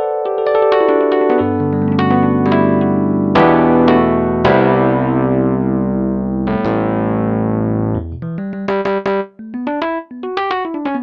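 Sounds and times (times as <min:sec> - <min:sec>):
electric piano chords: 0:00.0 - 0:11.0.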